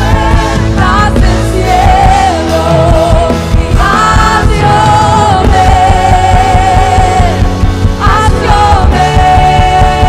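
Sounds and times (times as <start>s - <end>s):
drums: 0.0s - 10.0s
keyboards: 0.0s - 10.0s
woman singing: 0.0s - 10.0s.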